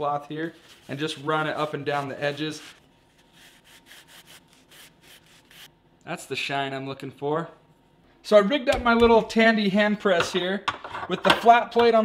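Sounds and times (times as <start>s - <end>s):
cloth rubbing leather edge: 0.5s - 5.7s.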